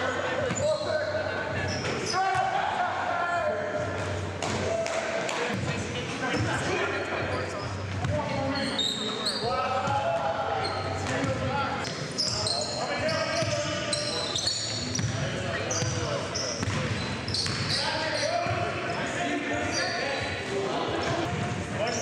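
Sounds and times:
players' voices: 0.0s - 22.0s.

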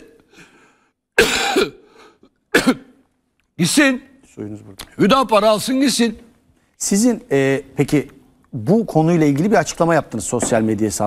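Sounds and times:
man coughing: 1.2s - 3.0s.

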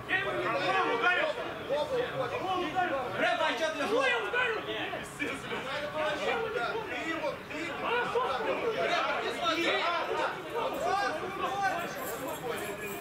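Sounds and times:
men's overlapping chatter: 0.0s - 13.0s.

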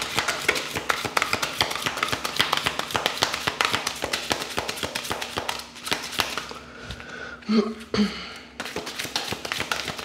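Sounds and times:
cards being shuffled by hand: 0.0s - 7.0s, 8.6s - 10.0s.

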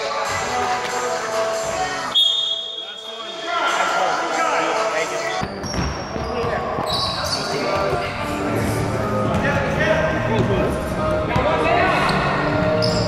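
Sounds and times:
players' voices: 0.0s - 13.0s
high-pitched shoe squeaks: 5.4s - 7.7s, 12.8s - 13.0s.

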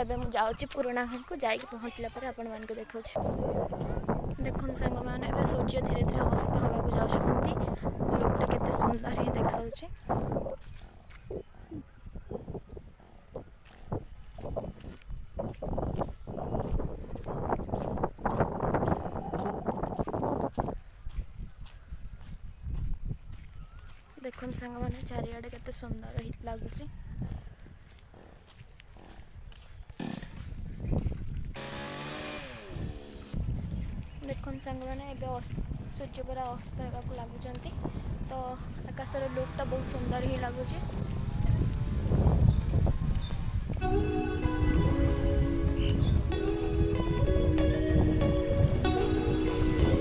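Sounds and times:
footsteps on wet dirt road: 0.0s - 50.0s
low rumbling microphone thumps: 3.2s - 20.8s
music of held notes: 43.8s - 50.0s.

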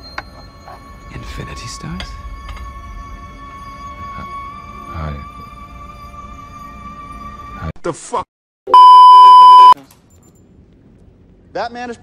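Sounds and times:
test-tone beep: 8.8s - 9.8s.

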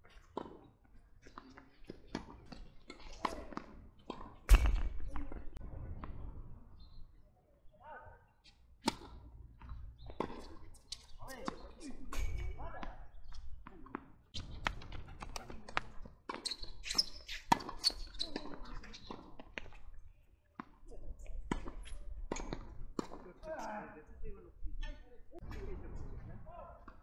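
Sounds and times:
balls bouncing on hard court: 0.1s - 5.4s, 8.8s - 19.8s
tennis balls struck by rackets: 0.2s - 5.4s, 8.8s - 16.4s, 17.3s - 19.7s, 20.6s - 23.3s.

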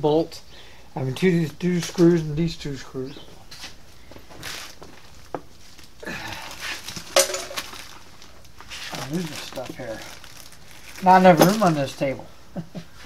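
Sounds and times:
metal screws clinking: 7.0s - 7.8s.

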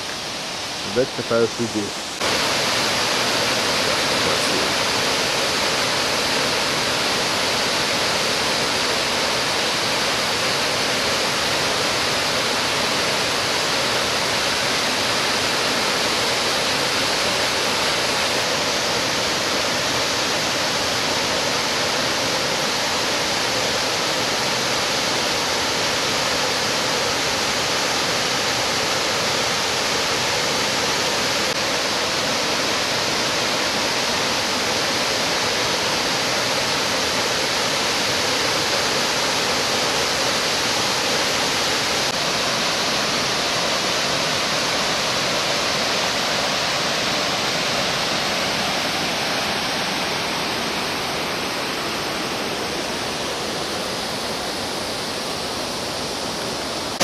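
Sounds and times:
waterfall rushing: 0.0s - 57.0s.

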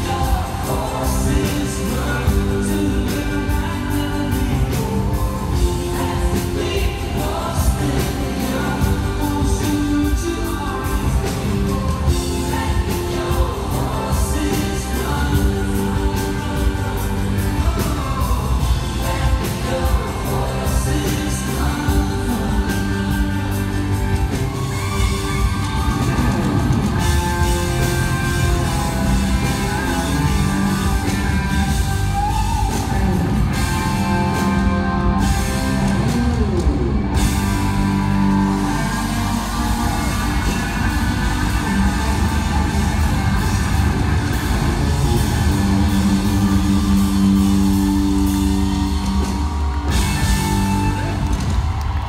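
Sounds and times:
electric guitar lead: 0.0s - 52.0s
rock band bass and drums: 0.0s - 52.0s.

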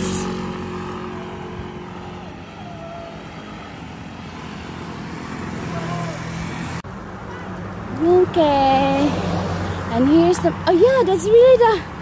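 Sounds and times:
car engine passing: 0.0s - 12.0s
steady traffic rumble: 0.0s - 12.0s.

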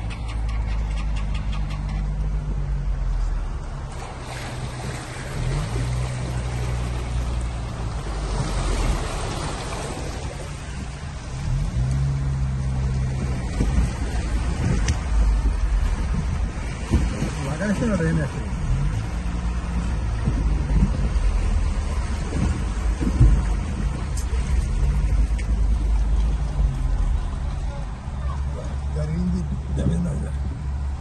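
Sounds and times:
tyres wading through water: 0.0s - 31.0s
water spray rushing: 3.9s - 28.8s.

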